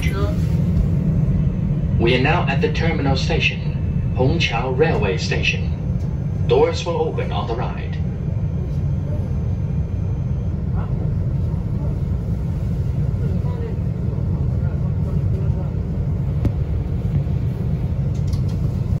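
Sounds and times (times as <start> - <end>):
train wheels rumbling on track: 0.0 - 19.0.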